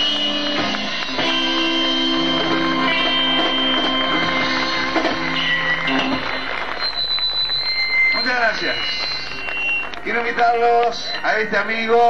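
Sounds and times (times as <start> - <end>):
live band chord: 0.0 - 6.6
concert audience noise: 0.0 - 12.0.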